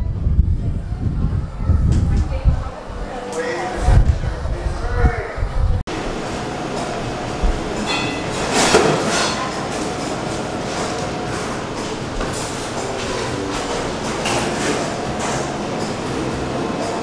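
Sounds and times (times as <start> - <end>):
busy shop background noise: 0.0 - 17.0
short ring: 7.8 - 8.4.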